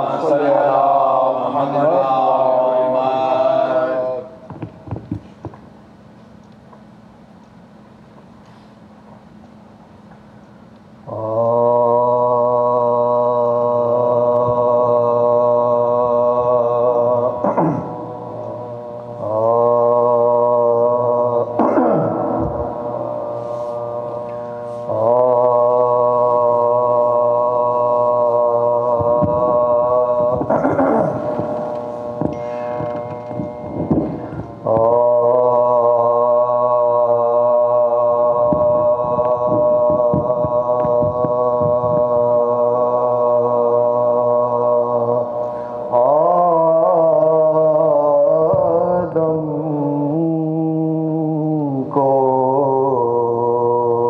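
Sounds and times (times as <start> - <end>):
man chanting long steady note: 0.0 - 5.8, 10.0 - 54.0.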